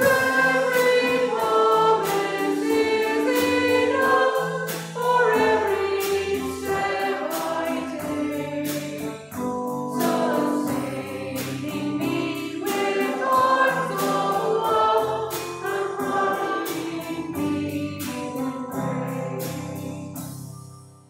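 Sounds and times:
congregation singing a hymn: 0.0 - 20.3
instrumental accompaniment: 0.0 - 21.0.

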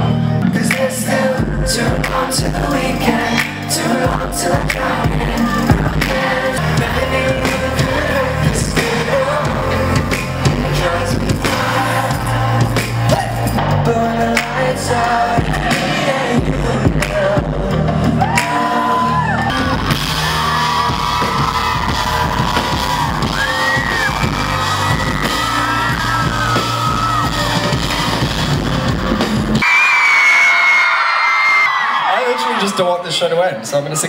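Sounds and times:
live pop band playing: 0.0 - 29.9
crowd screaming and cheering: 0.0 - 34.0.

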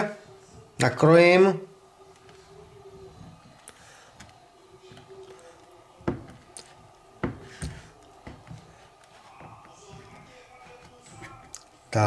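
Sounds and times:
knife knocking on cutting board: 6.0 - 6.4.

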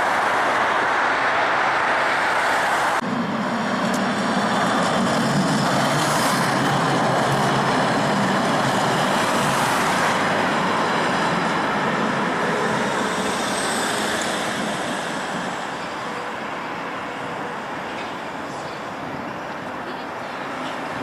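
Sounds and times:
passing road traffic: 0.0 - 21.0
tram motors rumbling: 0.0 - 21.0
tram wheels on rails: 0.0 - 21.0.

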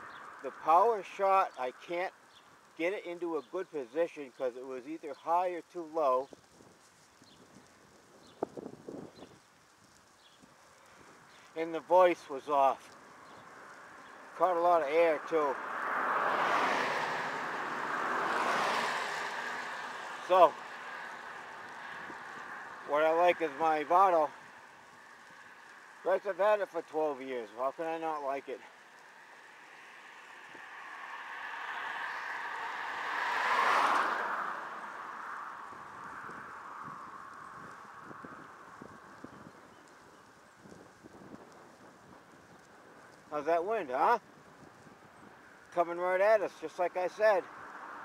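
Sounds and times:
cars passing close by: 0.0 - 8.0, 9.3 - 41.0, 41.7 - 48.0
wind on microphone: 6.3 - 11.3, 35.7 - 43.1
vehicle passing at speed: 15.0 - 22.8, 28.6 - 38.8, 47.4 - 48.0.

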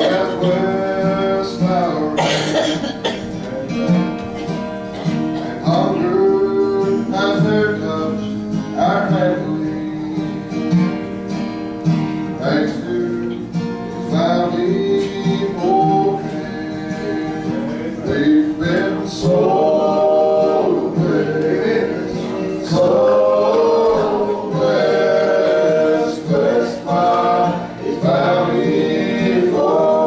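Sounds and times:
men singing gospel song: 0.0 - 4.2, 5.0 - 11.0, 12.4 - 30.0
guitar accompaniment: 0.0 - 30.0.

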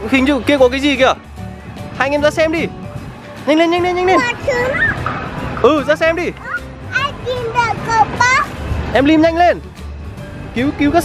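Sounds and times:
background music: 0.0 - 11.0
young children's voices: 4.1 - 5.1, 6.4 - 8.6.

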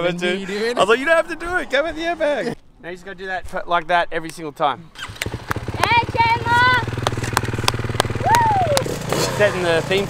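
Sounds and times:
dirt bike engine running: 5.0 - 10.0.

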